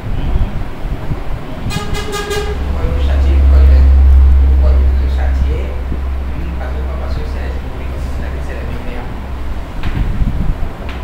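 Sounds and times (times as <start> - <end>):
deep engine rumble: 0.0 - 11.0
vehicle horn toots: 1.6 - 6.5.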